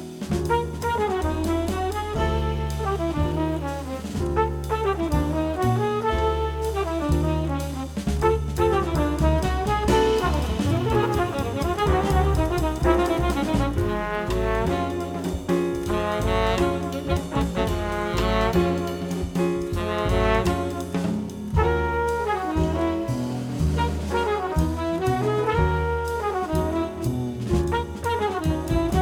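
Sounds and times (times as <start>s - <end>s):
bass: 0.0s - 29.0s
drum kit: 0.0s - 29.0s
trumpet: 0.4s - 29.0s.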